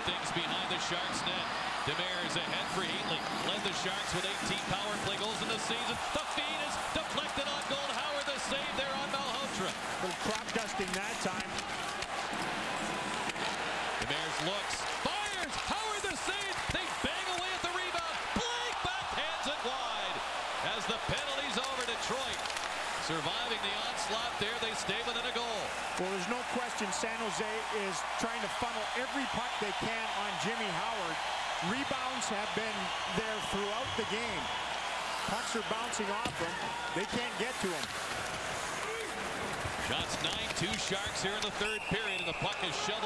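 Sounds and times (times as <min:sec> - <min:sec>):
crowd din with shouts: 0:00.0 - 0:43.0
sticks and puck clacking: 0:06.7 - 0:18.9, 0:20.9 - 0:23.6, 0:35.8 - 0:41.8.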